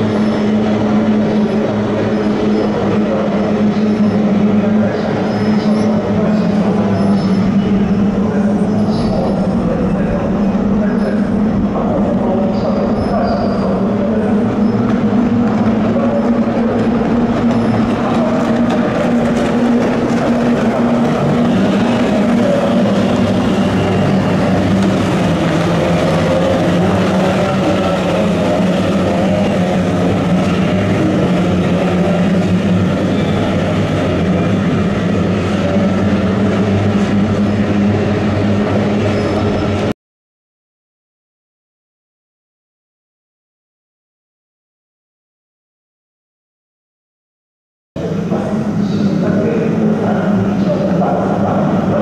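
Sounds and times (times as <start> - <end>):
racing boat engines buzzing: 0.0 - 39.9.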